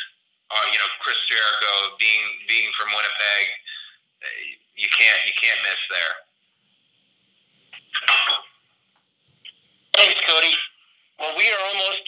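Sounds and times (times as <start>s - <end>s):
short vocal sound over phone line: 0.0s - 6.2s.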